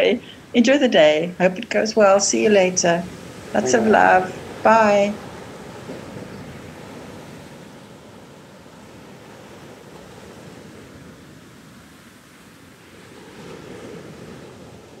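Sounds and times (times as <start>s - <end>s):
ocean surf washing ashore: 0.0s - 15.0s.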